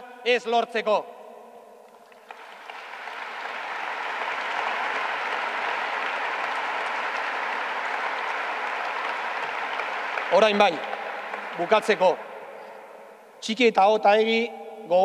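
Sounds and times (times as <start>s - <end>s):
audience applauding: 2.0s - 12.3s.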